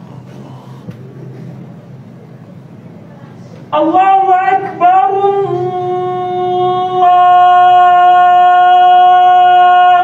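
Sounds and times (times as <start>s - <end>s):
faint background noise: 0.0s - 10.0s
steady low hum: 0.0s - 10.0s.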